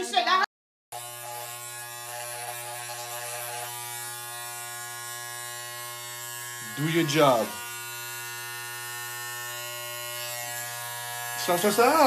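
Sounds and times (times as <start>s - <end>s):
electric hair clippers buzzing: 0.9s - 12.0s.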